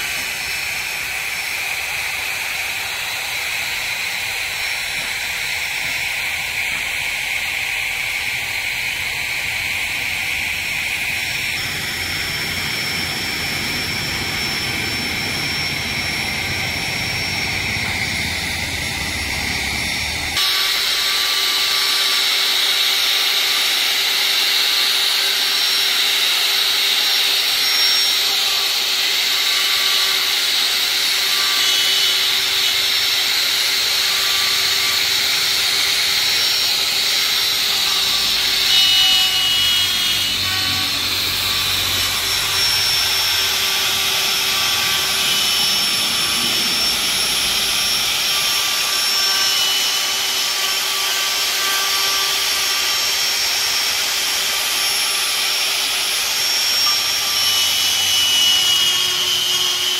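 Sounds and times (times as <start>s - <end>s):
electric router whining: 0.0s - 59.9s
steady noise: 3.8s - 20.4s.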